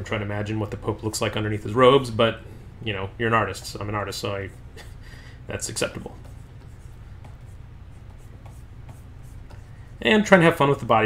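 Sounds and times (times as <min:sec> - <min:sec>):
low steady hum: 0:00.0 - 0:11.0
stylus scratching on tablet: 0:05.8 - 0:10.5.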